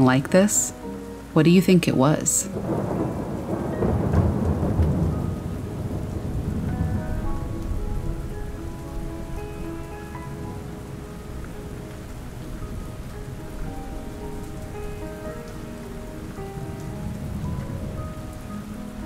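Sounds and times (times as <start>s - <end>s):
soft background music: 0.0s - 19.0s
steady rain falling: 0.0s - 19.0s.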